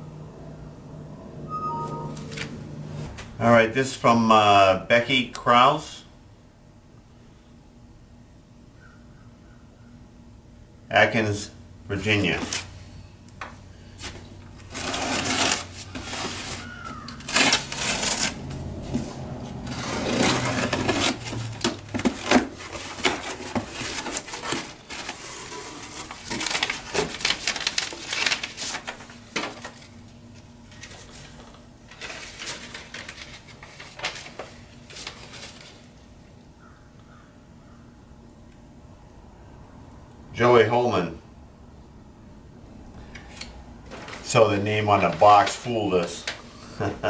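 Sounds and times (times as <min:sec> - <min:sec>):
packing paper rustling: 0:13.9 - 0:36.1, 0:43.2 - 0:46.6
cardboard box tearing open: 0:14.6 - 0:18.6, 0:19.5 - 0:29.8.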